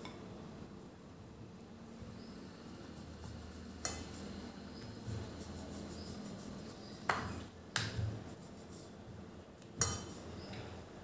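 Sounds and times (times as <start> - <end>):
rolling pin rolling dough: 1.9 - 10.8.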